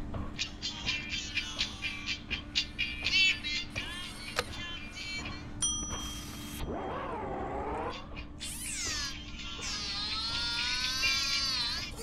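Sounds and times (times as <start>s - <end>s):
cartoon meow-like vocal: 8.4s - 12.0s.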